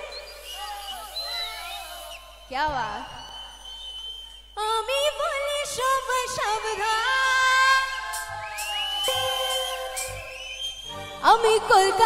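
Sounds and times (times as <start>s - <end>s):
live band music: 8.1s - 11.5s.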